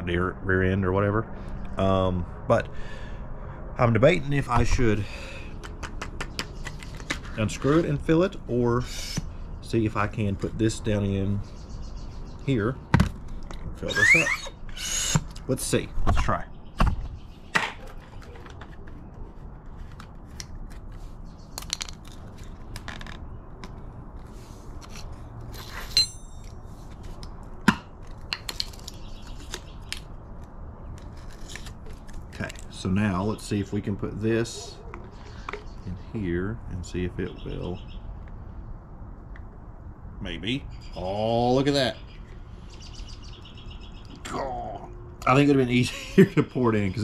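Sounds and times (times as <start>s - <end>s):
low outdoor background noise: 0.0s - 47.0s.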